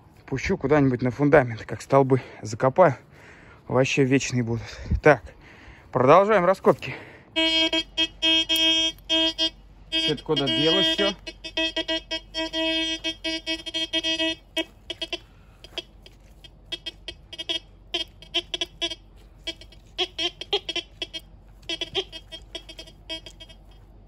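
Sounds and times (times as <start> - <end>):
metal detector beeps: 6.9 - 24.0
metal detector electronic tone: 7.4 - 24.0.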